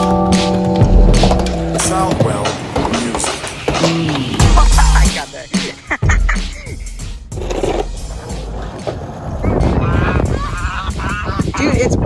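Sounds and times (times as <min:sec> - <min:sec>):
skateboard wheels rolling: 0:00.0 - 0:04.6, 0:07.3 - 0:10.6
background music: 0:00.0 - 0:12.0
skateboard knocks: 0:00.8 - 0:04.2.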